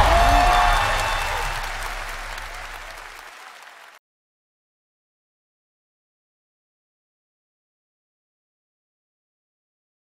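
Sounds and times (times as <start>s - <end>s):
applause: 0.0s - 4.0s.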